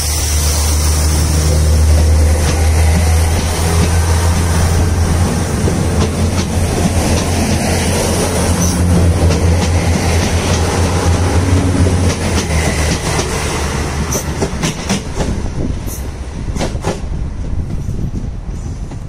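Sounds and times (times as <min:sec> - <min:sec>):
diesel train engine drone: 0:00.0 - 0:19.0
wheels rumbling on rails: 0:00.0 - 0:19.0.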